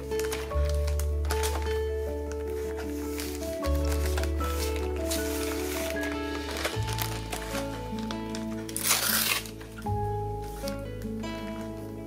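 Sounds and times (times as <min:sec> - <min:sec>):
plastic packaging crinkling: 0:00.0 - 0:11.9
relaxing guitar music: 0:00.0 - 0:12.0.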